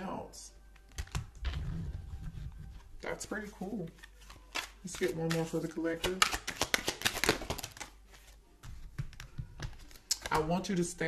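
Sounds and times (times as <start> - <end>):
cards shuffling: 0.8 - 11.0.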